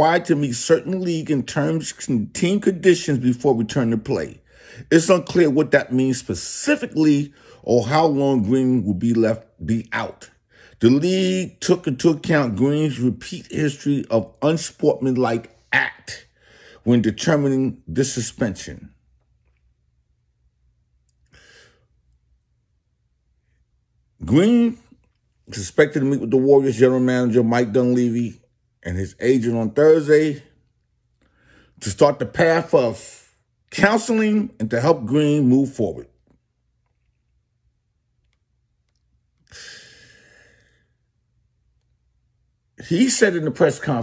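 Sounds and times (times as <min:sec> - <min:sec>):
faint low hum: 0:00.0 - 0:44.0
person sighing: 0:39.5 - 0:40.8
man's short breath: 0:39.5 - 0:40.9.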